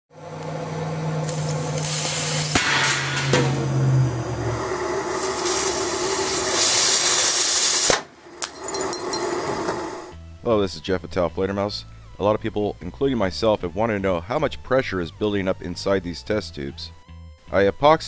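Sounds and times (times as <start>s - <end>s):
blowtorch and steam hissing: 1.1s - 8.4s, 9.4s - 10.1s.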